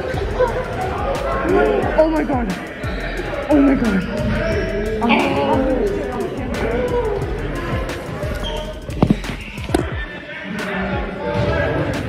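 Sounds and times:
basketballs bouncing on gym floor: 8.9s - 10.1s.

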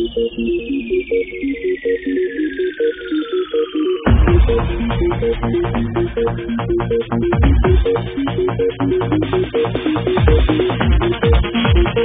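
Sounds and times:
falling synth sweep: 0.0s - 10.8s
beat and bass: 0.0s - 12.0s
rave music: 0.0s - 12.0s
synth arpeggio: 0.0s - 12.0s.

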